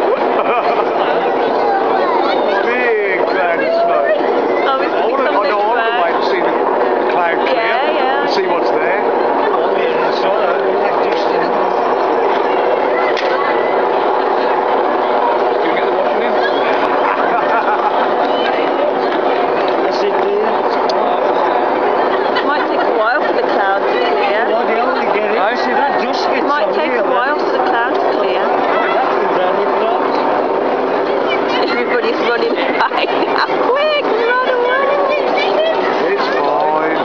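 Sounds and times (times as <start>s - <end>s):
crowd talking: 0.0s - 37.0s.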